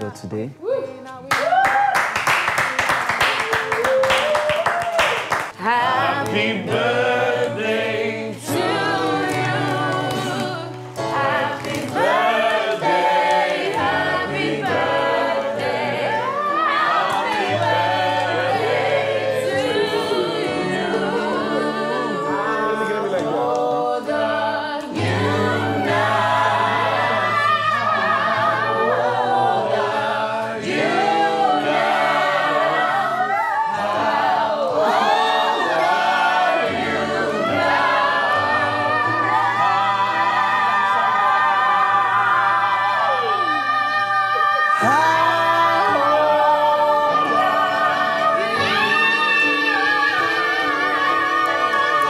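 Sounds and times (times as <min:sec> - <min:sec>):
voices singing in chorus: 0:05.5 - 0:52.0.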